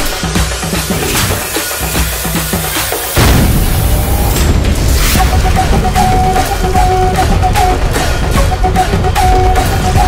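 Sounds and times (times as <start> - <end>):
deep boom hit: 3.2 - 6.2.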